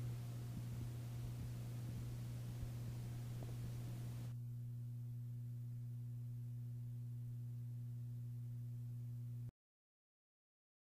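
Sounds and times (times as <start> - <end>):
faint low hum: 0.0 - 9.5.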